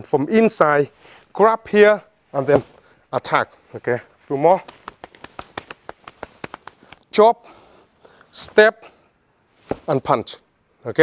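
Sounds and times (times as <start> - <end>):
light taps and slaps of hands: 4.6 - 7.1.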